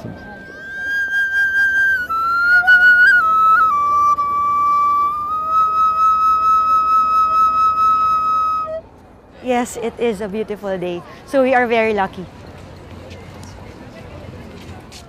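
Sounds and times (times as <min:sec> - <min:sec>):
bamboo flute melody: 0:00.0 - 0:09.0.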